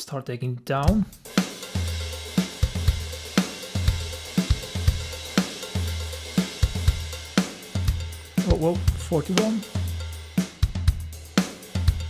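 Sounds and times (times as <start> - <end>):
kick drum with low bass tones: 0.8 - 12.0.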